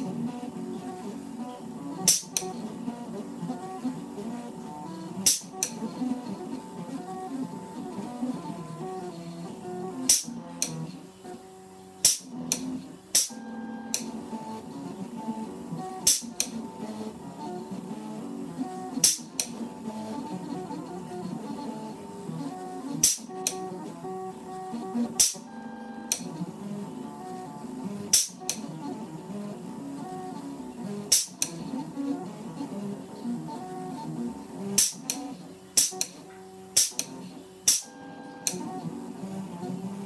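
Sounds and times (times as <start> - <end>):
sharp clicks: 10.1 - 10.8, 12.0 - 14.2, 16.0 - 16.6, 34.8 - 36.2, 36.8 - 38.7.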